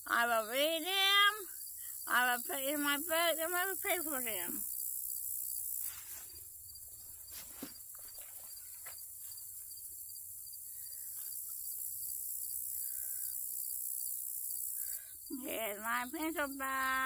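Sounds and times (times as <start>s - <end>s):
crickets chirping: 0.0s - 17.0s.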